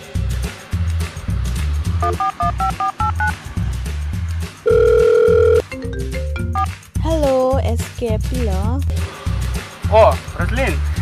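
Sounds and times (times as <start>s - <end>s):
music bass beat: 0.1s - 8.9s
phone keypad beeps: 2.0s - 3.3s, 4.7s - 5.6s
loud steady phone tone: 2.0s - 3.4s, 4.7s - 5.6s.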